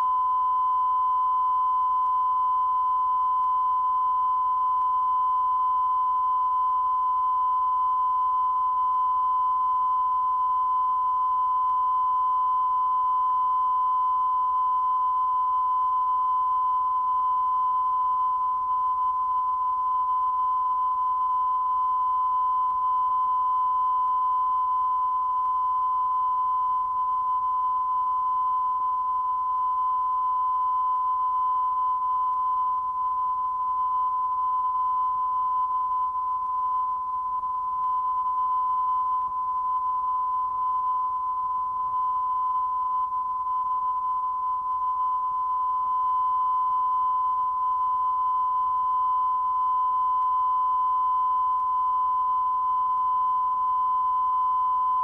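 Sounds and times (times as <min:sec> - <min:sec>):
steady test tone beep: 0:00.0 - 0:55.0.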